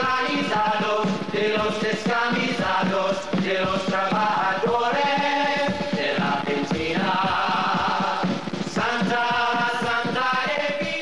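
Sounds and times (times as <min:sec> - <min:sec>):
choir singing held notes: 0:00.0 - 0:11.0
steady beat: 0:00.0 - 0:11.0.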